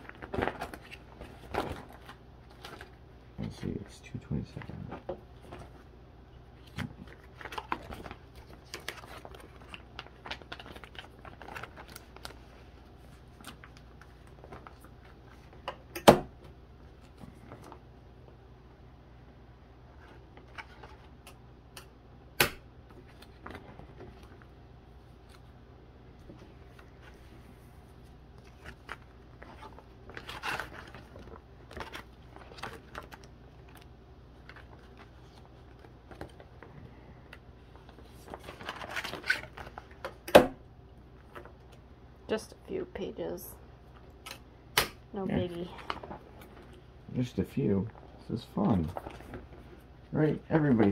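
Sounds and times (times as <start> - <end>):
plastic binder pages crinkling: 0.0 - 17.9, 19.9 - 21.4, 22.8 - 25.6, 26.2 - 40.3, 41.1 - 41.8, 45.4 - 50.9.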